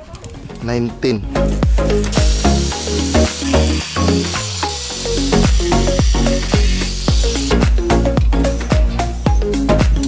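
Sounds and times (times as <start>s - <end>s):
background music with beat: 0.4s - 10.0s
angle grinder cutting steel: 1.5s - 8.7s.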